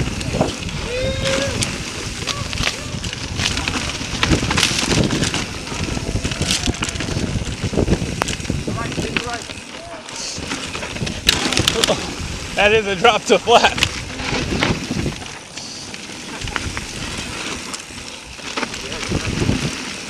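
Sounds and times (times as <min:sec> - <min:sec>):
wind on microphone: 0:00.0 - 0:09.5, 0:10.3 - 0:13.0, 0:13.6 - 0:15.4, 0:18.8 - 0:20.0
bike rattling over bumps: 0:00.0 - 0:20.0
bike tyres rolling over dirt: 0:00.0 - 0:20.0.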